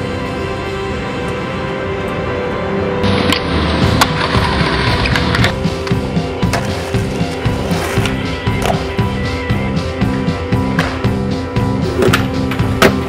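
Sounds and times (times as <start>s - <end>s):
skateboard wheels rolling: 0.0s - 13.0s
music with steady beat: 3.0s - 13.0s
skateboard clacking on ground: 3.2s - 9.0s.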